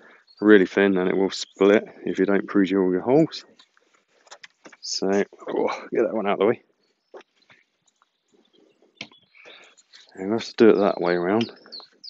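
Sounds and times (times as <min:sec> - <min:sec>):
soft netting rustling: 0:03.5 - 0:05.0.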